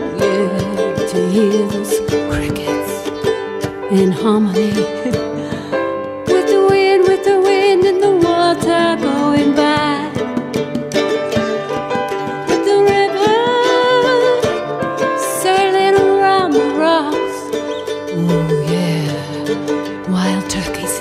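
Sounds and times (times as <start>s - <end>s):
woman singing with vibrato: 0.0s - 10.2s, 12.5s - 14.6s, 15.2s - 17.5s, 18.1s - 21.0s
plucked ukulele strings: 0.0s - 21.0s.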